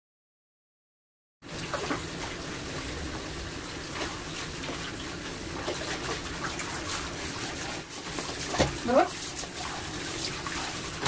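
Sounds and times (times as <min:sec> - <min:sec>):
water splashing into tub: 0:01.4 - 0:11.0.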